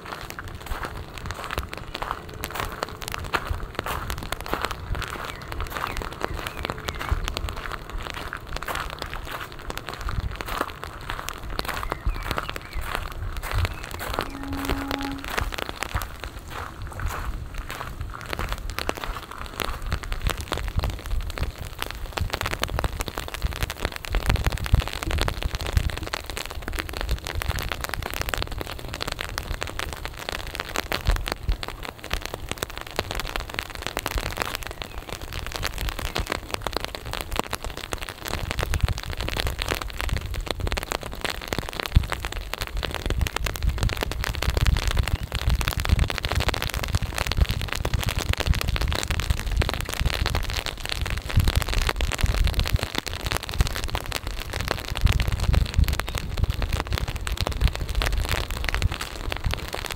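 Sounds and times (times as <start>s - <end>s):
low rumbling: 0.0s - 21.3s
rain on wet paving: 0.0s - 59.9s.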